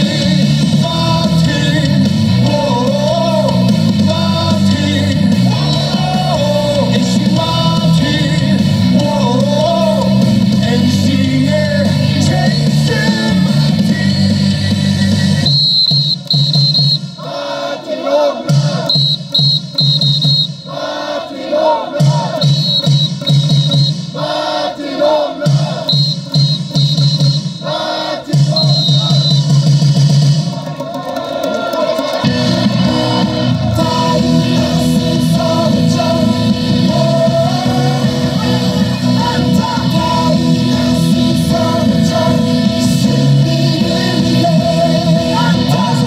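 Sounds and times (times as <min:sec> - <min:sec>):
crowd singing along: 0:00.0 - 0:29.8, 0:30.4 - 0:46.0
cheer song over loudspeakers: 0:00.0 - 0:46.0.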